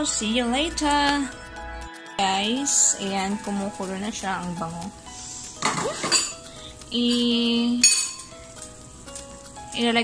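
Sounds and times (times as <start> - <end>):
metal pot clatter: 5.6 - 6.4, 7.0 - 8.3.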